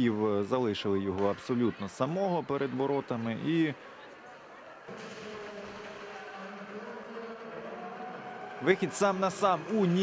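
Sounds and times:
ice rink ambience: 0.0 - 10.0
echoing public address announcement: 4.9 - 10.0.

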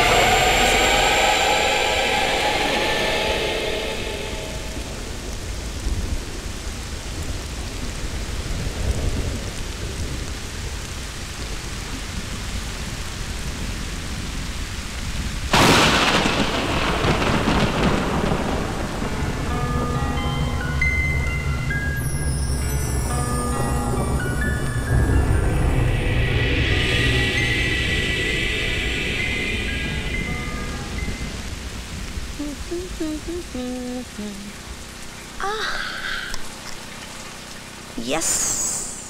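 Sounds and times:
low rolling thunder: 0.0 - 21.2
steady rain: 0.0 - 39.0
loud thunderclap: 15.4 - 19.6.

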